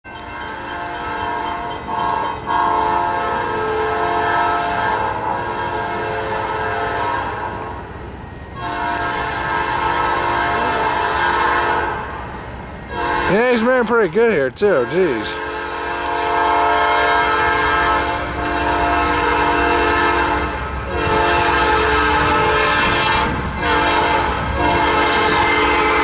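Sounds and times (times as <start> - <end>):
locomotive horn blasts: 0.4 - 7.7, 8.6 - 12.1, 12.9 - 13.9, 14.5 - 26.0.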